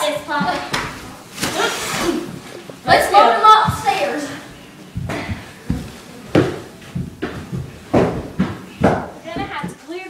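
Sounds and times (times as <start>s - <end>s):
booted feet on wooden floor: 2.3s - 9.8s.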